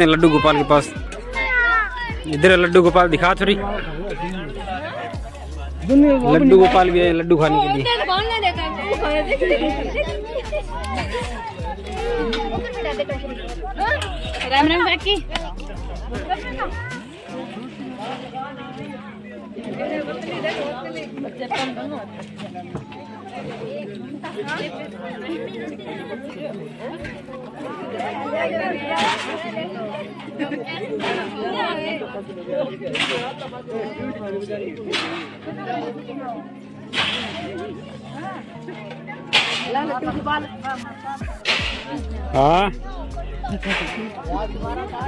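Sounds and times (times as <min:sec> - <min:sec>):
chatter of many voices: 0:00.0 - 0:45.0
group of people talking: 0:00.0 - 0:45.0
sharp crack: 0:36.9 - 0:37.4, 0:39.3 - 0:39.8, 0:41.4 - 0:42.0, 0:43.6 - 0:44.0.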